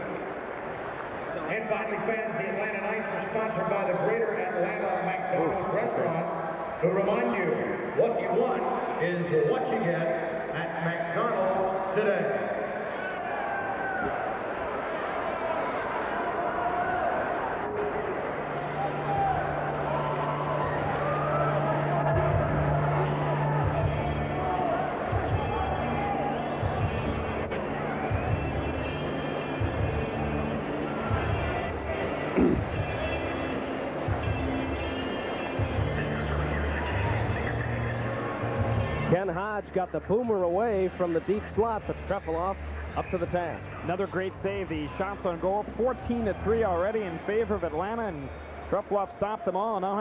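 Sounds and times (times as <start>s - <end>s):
crowd chatter: 0.0s - 50.0s
arena music over loudspeakers: 1.2s - 14.7s, 15.6s - 50.0s.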